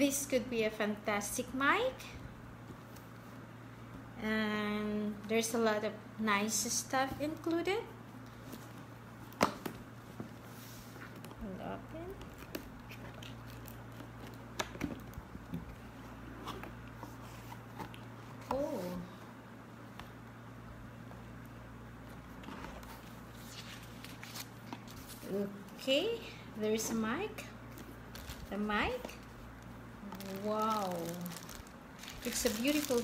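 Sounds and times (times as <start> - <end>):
steady low hum: 0.0 - 33.0
packaging rustling: 28.0 - 33.0.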